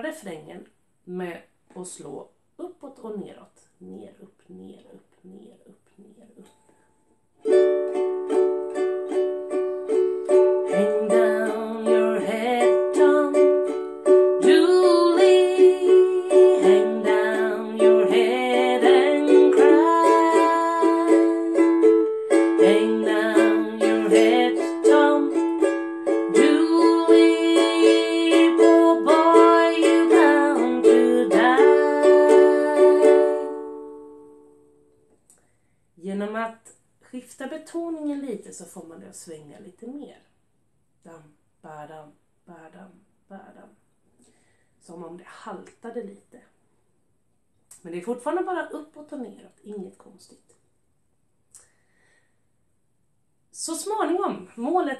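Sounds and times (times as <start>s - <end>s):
ukulele strumming: 7.4s - 34.8s.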